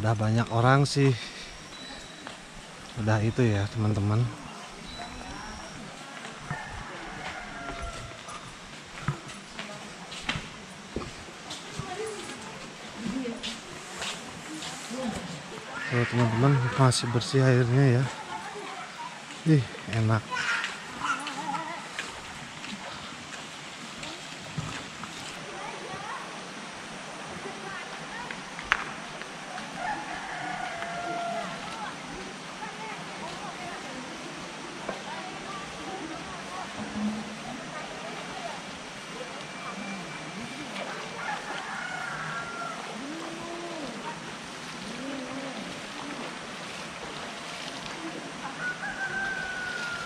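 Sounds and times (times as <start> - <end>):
faint voices of people: 0.0 - 50.0
water washing: 0.0 - 50.0
footsteps on poolside: 1.4 - 2.8, 4.5 - 16.4, 18.0 - 25.8, 27.7 - 33.9, 40.4 - 50.0.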